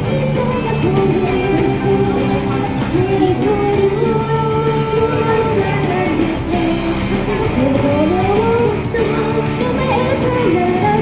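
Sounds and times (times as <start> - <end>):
pop-rock backing track: 0.0 - 11.0
woman singing into microphone: 0.0 - 11.0.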